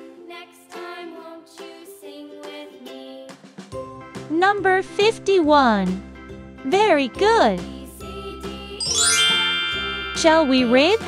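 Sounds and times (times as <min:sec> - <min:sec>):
soft children's background music: 0:00.0 - 0:11.0
chime glissando sweeping upward: 0:08.8 - 0:11.0.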